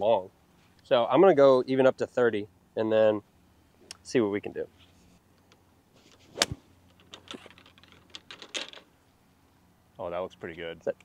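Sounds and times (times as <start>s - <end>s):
faint clicks and rustles: 4.7s - 9.2s
golf club striking ball: 6.3s - 6.7s.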